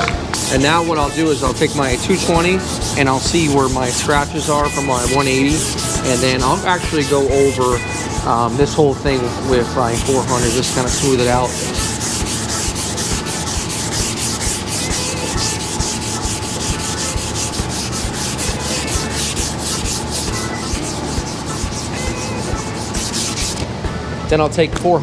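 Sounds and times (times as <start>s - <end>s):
sandpaper scratching on plastic: 0.4s - 23.6s.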